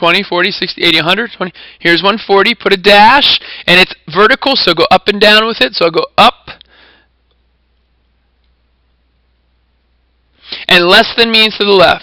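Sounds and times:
steady low hum: 0:06.0 - 0:12.0
faint hiss: 0:06.5 - 0:12.0.

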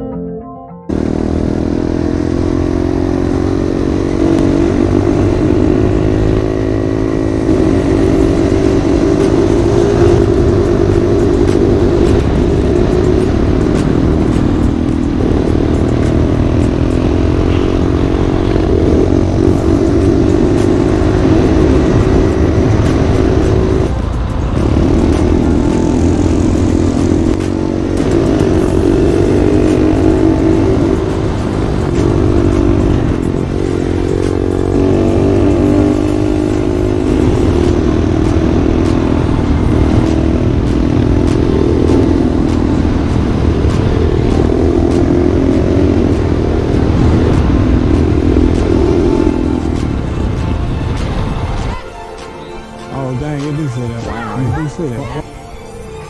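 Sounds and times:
small vehicle engine running: 0:00.9 - 0:51.8
wind and road noise: 0:00.9 - 0:56.0.

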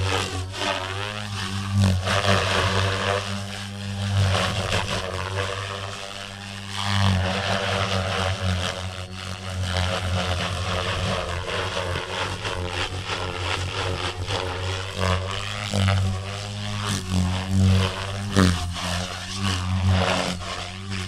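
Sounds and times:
rc helicopter rotor blades and motor: 0:00.0 - 0:21.0.

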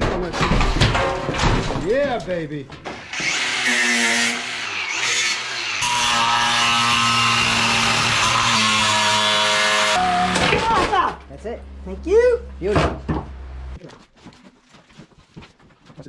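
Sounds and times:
angle grinder cutting steel: 0:02.9 - 0:10.4.

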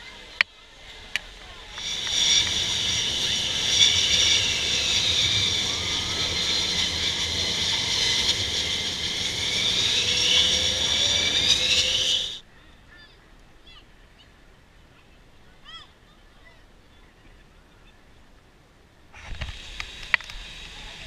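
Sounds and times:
jet engines whining: 0:00.0 - 0:12.4, 0:19.3 - 0:21.0
low engine rumble: 0:00.0 - 0:12.5.

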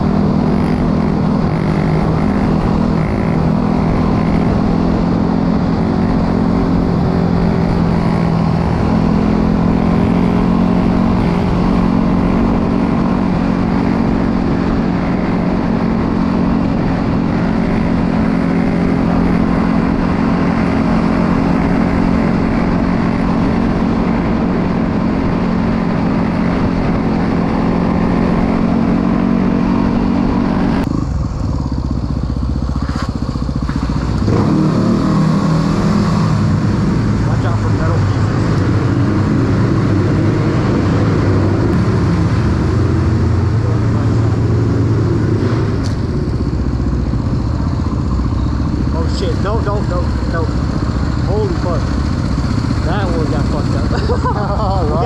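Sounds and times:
dirt bike engine revving: 0:00.0 - 0:31.1, 0:32.8 - 0:55.0.

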